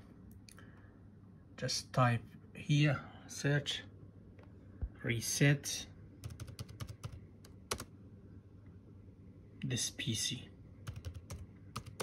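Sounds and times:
laptop keystrokes: 0:06.2 - 0:07.9, 0:10.9 - 0:12.0.

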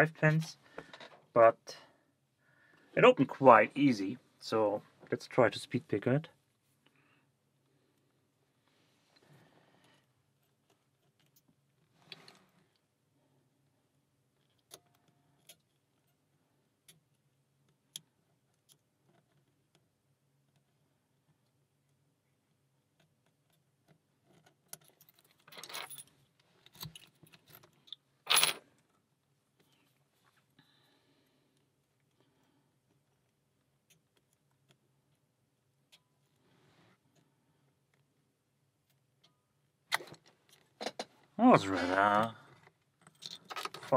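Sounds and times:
lock pick clicks and scrapes: 0:43.0 - 0:43.9.

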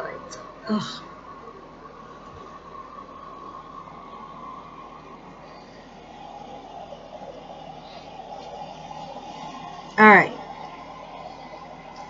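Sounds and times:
faint humming tone: 0:00.0 - 0:12.0.

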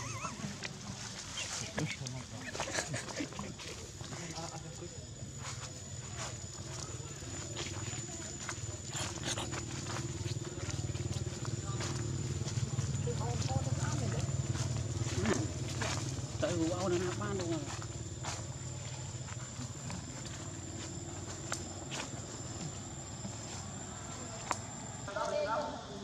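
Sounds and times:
steady low hum: 0:00.0 - 0:26.0
footsteps crunching dry leaves: 0:05.3 - 0:24.5.

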